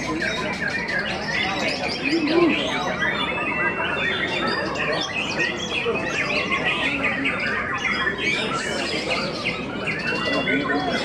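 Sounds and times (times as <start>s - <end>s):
murmur of voices: 0.0s - 11.0s
songbirds singing: 0.0s - 11.0s.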